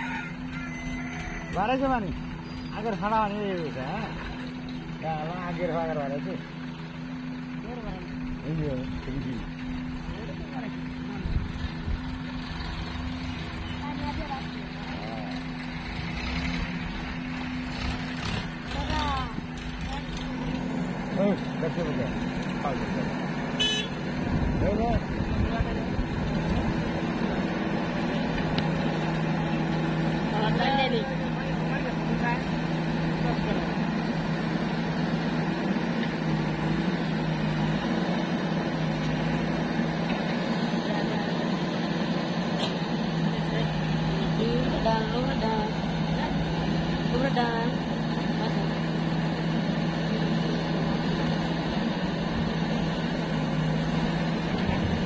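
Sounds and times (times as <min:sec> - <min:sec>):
diesel engine drone: 0:00.0 - 0:55.0.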